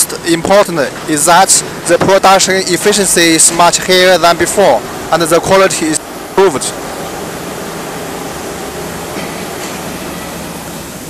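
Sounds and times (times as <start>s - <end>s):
workshop machinery noise: 0.0s - 11.0s.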